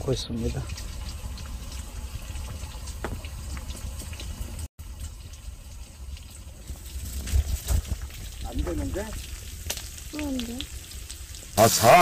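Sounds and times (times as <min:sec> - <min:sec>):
soup boiling and bubbling: 0:00.0 - 0:12.0.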